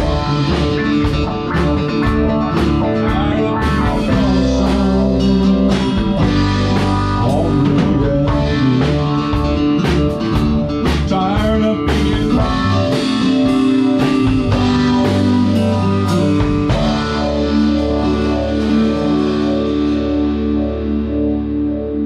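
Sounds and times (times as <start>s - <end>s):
acoustic guitar: 0.0s - 22.0s
drum kit playing: 0.0s - 22.0s.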